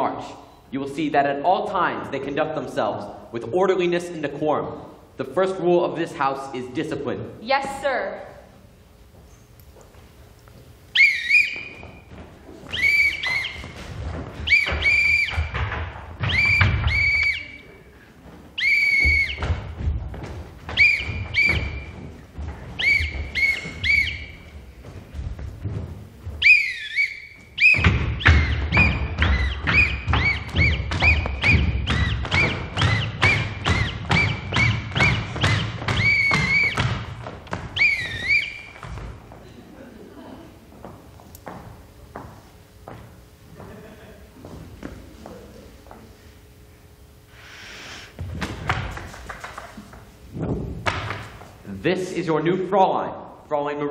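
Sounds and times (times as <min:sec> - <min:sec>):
marching footsteps on wooden stage: 0:08.9 - 0:46.2, 0:48.1 - 0:51.8
signal whistle calls: 0:10.9 - 0:12.1, 0:12.7 - 0:13.8, 0:14.4 - 0:15.6, 0:16.2 - 0:17.8, 0:18.6 - 0:19.6, 0:20.7 - 0:22.1, 0:22.8 - 0:24.6, 0:26.4 - 0:37.0, 0:37.7 - 0:38.9.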